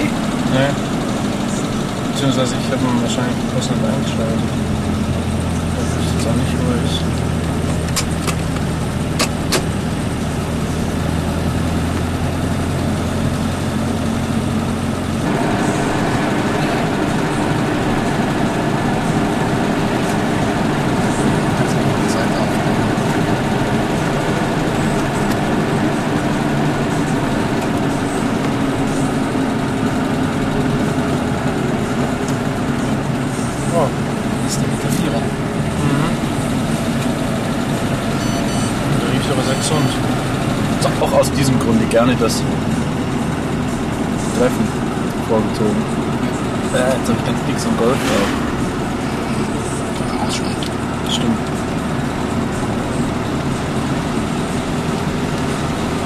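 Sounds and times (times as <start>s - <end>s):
car engine running: 0.0s - 56.0s.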